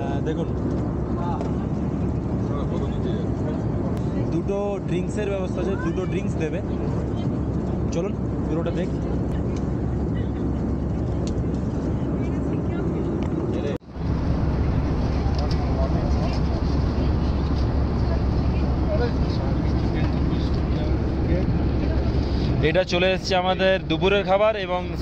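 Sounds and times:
jet airliner cabin rumble: 0:00.0 - 0:25.0.

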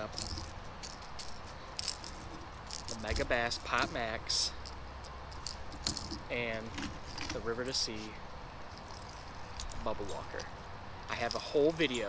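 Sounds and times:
plastic fishing lures rattling: 0:00.0 - 0:07.5.

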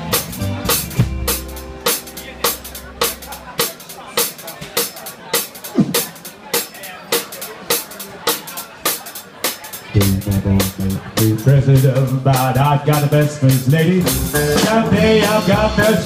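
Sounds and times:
drum kit beat: 0:00.0 - 0:16.0.

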